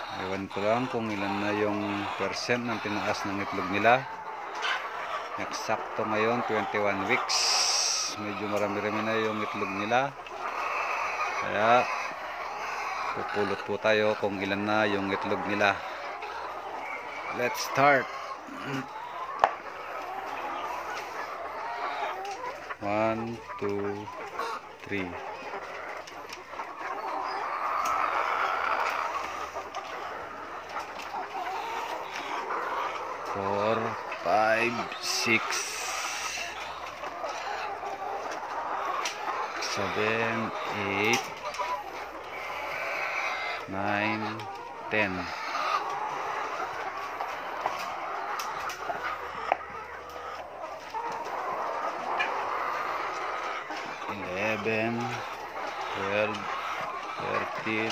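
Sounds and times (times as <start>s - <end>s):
hens clucking: 0.0s - 57.9s.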